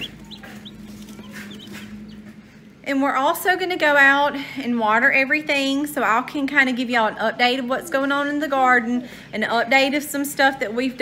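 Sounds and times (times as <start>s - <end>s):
chicks peeping: 0.0s - 2.7s
low steady hum: 0.0s - 11.0s.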